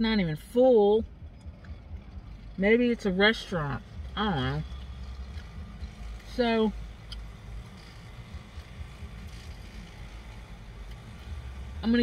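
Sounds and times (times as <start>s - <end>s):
low rumble in car cabin: 0.0s - 12.0s.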